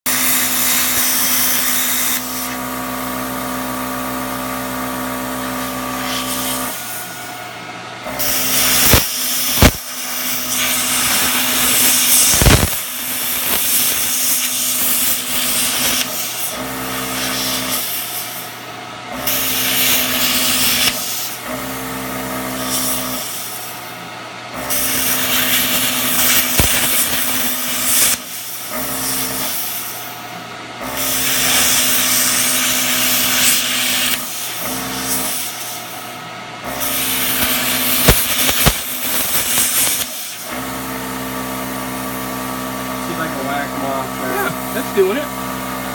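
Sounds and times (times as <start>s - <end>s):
plasma cutter arc hissing: 0.1s - 7.4s, 8.1s - 21.7s, 22.4s - 23.8s, 24.7s - 30.2s, 30.8s - 36.0s, 36.7s - 45.9s.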